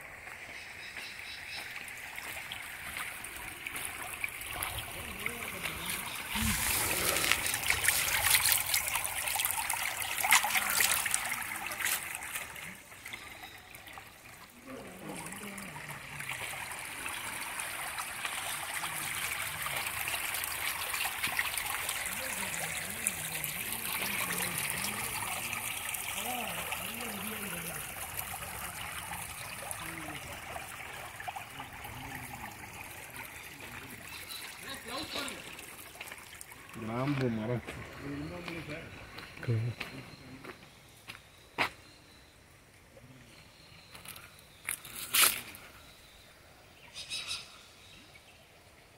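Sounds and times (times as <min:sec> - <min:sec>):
stream water over rocks: 0:00.0 - 0:40.4
faint people talking: 0:22.0 - 0:30.6.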